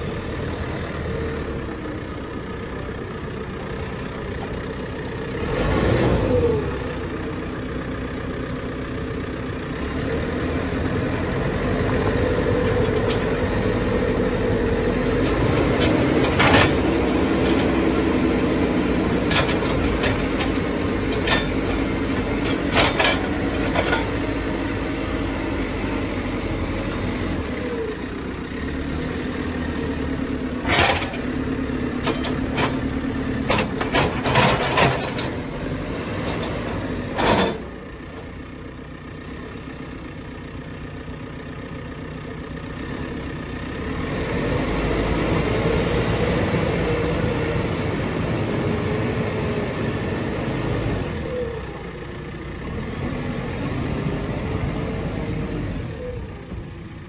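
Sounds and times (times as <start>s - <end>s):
diesel engine running under load: 0.0s - 57.0s
loader bucket digging into dirt: 15.1s - 17.8s.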